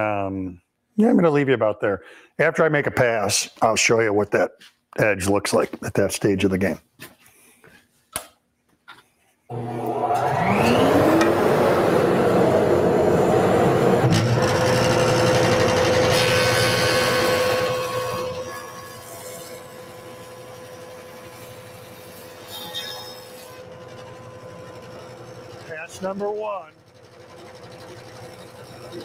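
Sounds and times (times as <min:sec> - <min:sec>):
jointer cutting wood: 0:09.5 - 0:29.0
jointer humming: 0:09.5 - 0:29.0.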